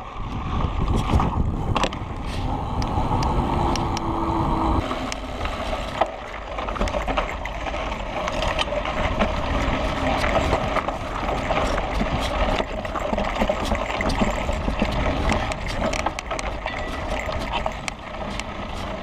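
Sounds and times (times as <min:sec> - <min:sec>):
bike clicks and rattles: 0:00.0 - 0:04.1, 0:04.8 - 0:19.0
wind on microphone: 0:00.0 - 0:06.0, 0:06.8 - 0:19.0
bike tyres on dirt: 0:00.0 - 0:19.0.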